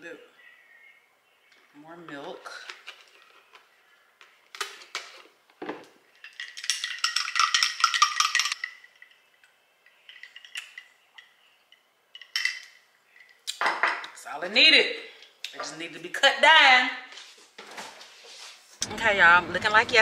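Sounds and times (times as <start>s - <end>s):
spoon clinking in glass mug: 6.4s - 8.9s.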